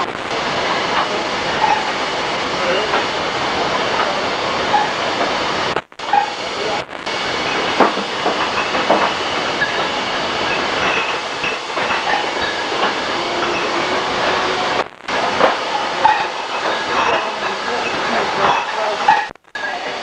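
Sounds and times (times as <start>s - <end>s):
bottling machine clatter: 7.5s - 14.4s, 15.1s - 19.3s
glass bottles clinking: 16.0s - 19.3s.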